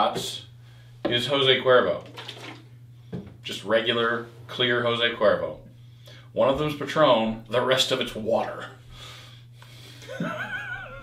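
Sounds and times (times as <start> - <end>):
low electrical hum: 0.0 - 11.0
man laughing softly: 10.0 - 11.0.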